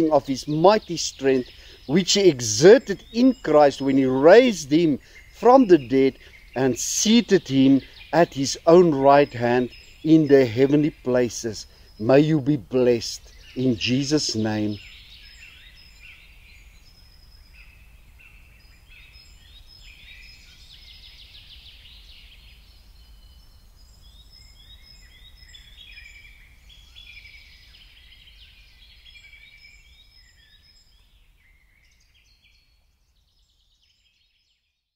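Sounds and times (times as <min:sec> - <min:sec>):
birds chirping and trilling: 0:00.0 - 0:34.7.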